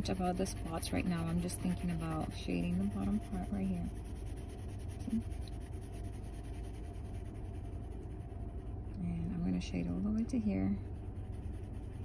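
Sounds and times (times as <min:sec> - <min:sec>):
pencil scratching on paper: 0:00.0 - 0:09.9, 0:10.5 - 0:12.0.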